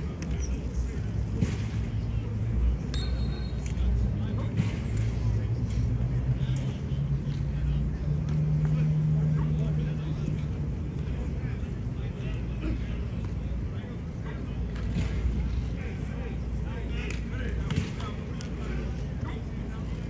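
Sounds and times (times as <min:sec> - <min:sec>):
low mechanical hum: 0:00.0 - 0:20.0.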